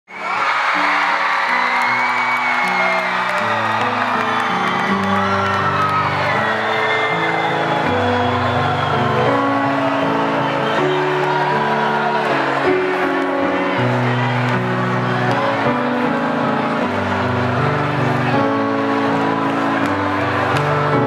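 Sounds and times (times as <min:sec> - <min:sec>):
crowd cheering and whooping: 0:00.1 - 0:21.0.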